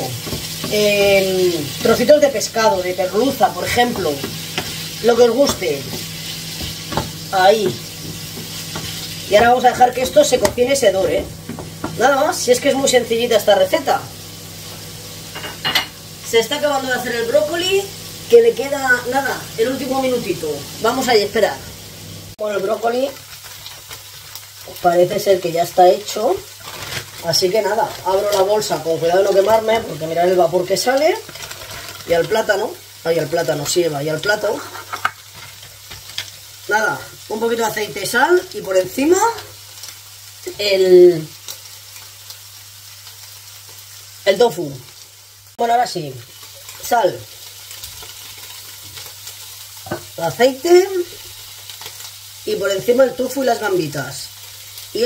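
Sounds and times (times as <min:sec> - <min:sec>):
food sizzling in a frying pan: 0:00.0 - 0:55.0.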